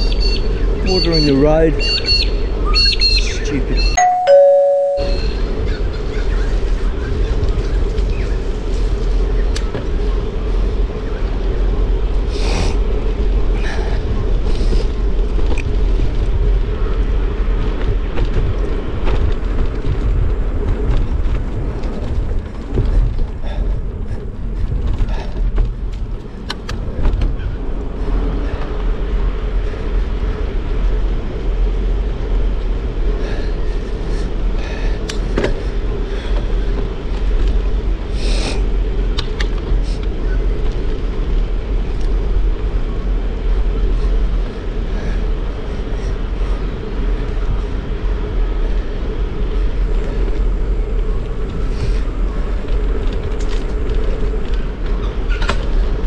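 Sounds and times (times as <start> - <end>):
bicycle tyre rumble: 0.0 - 4.7, 5.3 - 56.0
wind buffeting microphone: 0.0 - 56.0
two-note ding-dong chime: 4.0 - 5.5
small rattles and clicks: 51.2 - 56.0.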